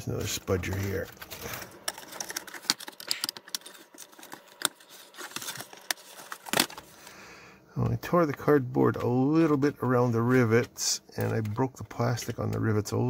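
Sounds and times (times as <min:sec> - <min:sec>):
plastic cracking and clicking: 0:00.2 - 0:06.9, 0:10.6 - 0:12.9
cardboard tearing: 0:00.6 - 0:06.9.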